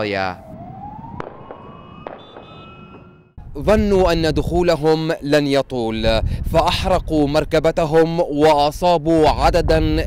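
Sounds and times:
ambulance siren wailing: 0.0 - 3.4.

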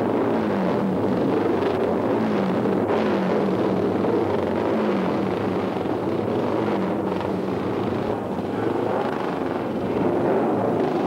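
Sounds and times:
motorcycle engines running: 0.0 - 11.0.

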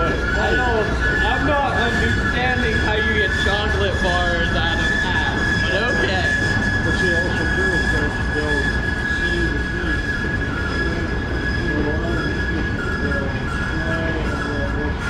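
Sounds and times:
freight train rumbling by: 0.0 - 15.0
high-pitched wheel squeal: 0.0 - 15.0.

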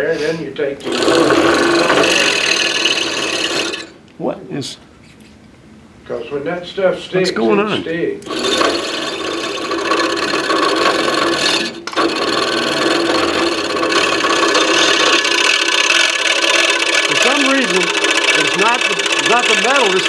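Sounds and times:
scroll saw cutting wood: 0.8 - 4.0, 8.2 - 20.0.

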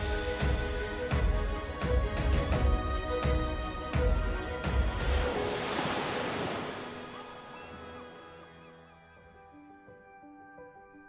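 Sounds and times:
sea wave washing along hull: 3.1 - 8.6.

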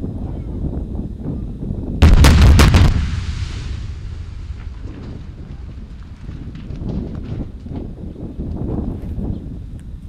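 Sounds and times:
sharp cracks: 2.0 - 7.4
fireball blast: 2.0 - 7.5
low rumble: 2.0 - 7.7.

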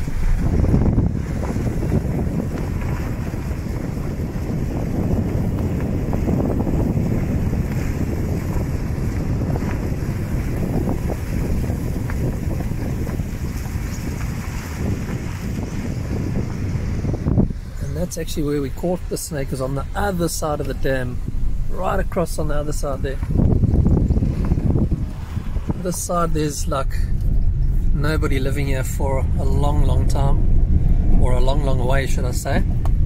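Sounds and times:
tyres and engine rumble: 0.0 - 33.0
wind buffeting microphone: 0.0 - 33.0.

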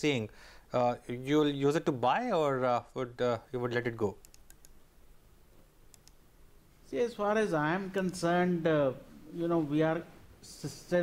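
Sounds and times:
man speaking: 0.0 - 4.2, 6.9 - 11.0
faint short clicks: 5.9 - 6.2.

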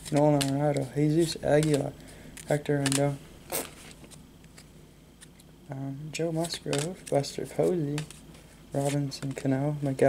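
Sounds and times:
card scrape: 0.0 - 5.4, 8.8 - 9.3
faint card handling: 0.0 - 5.5, 6.3 - 10.0
paper cards sliding: 8.8 - 9.1.

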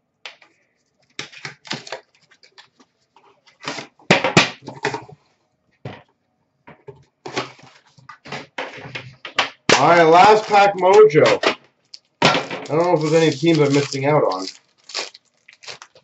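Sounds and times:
foil wrappers crinkling and tearing: 0.8 - 2.8, 9.8 - 11.2, 12.6 - 16.0
trading cards being handled: 9.7 - 11.4, 12.7 - 16.0.

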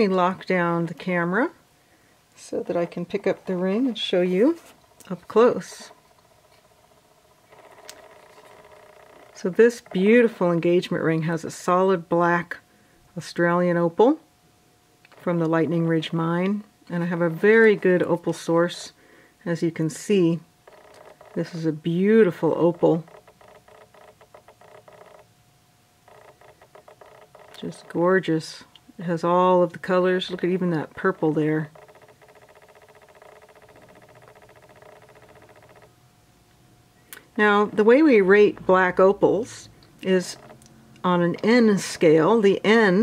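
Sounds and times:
faint steady hum: 0.0 - 43.0
faint rapid clicking: 5.0 - 10.0, 20.6 - 21.6, 22.7 - 25.3, 26.1 - 28.0, 30.2 - 35.9.

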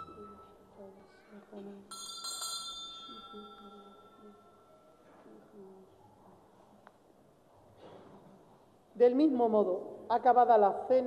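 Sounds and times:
altar bell ringing: 0.0 - 0.9, 1.8 - 5.2.

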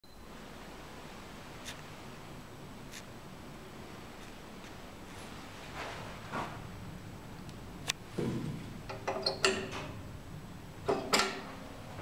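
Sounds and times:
lift mechanical clicks and clunks: 7.5 - 10.2, 10.8 - 12.0.

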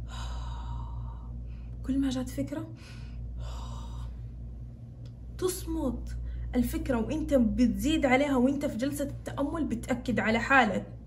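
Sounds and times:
steady low hum: 0.0 - 11.0
woman speaking: 1.8 - 2.8, 5.4 - 11.0.

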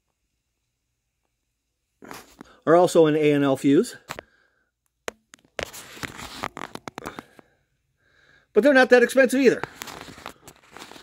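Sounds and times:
rustling handling noise: 5.2 - 7.4, 9.5 - 11.0.

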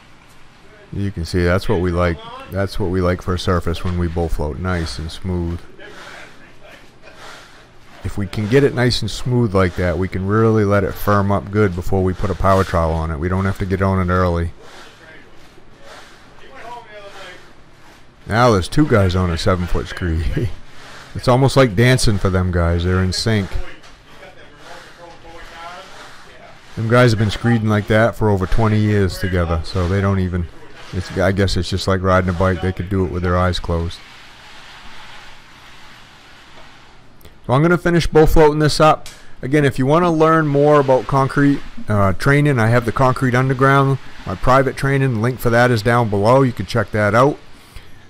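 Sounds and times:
straightedge scraping wet concrete: 1.2 - 48.0.

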